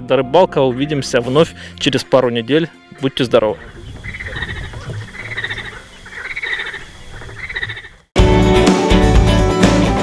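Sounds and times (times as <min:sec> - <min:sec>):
frogs calling: 0:02.9 - 0:08.1.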